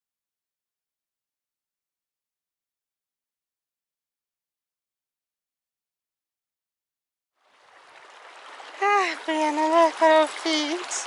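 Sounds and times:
creek water over pebbles: 7.4s - 11.0s
high voice calling out: 8.8s - 11.0s.

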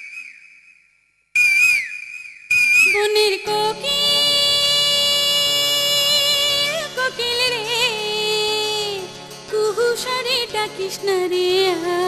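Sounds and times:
bird whistled call with echo: 0.0s - 3.2s.

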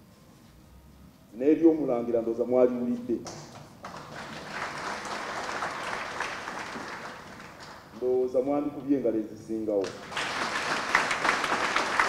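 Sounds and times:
crowd applauding: 3.8s - 8.0s, 9.8s - 12.0s.

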